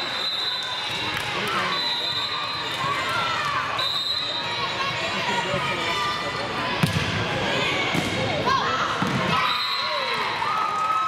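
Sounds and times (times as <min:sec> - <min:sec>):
volleyball struck with slaps: 0:06.8 - 0:07.2.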